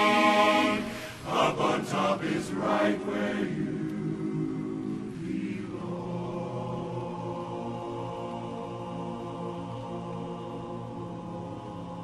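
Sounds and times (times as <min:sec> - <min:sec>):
men's chorus singing a cappella: 0:00.0 - 0:12.0.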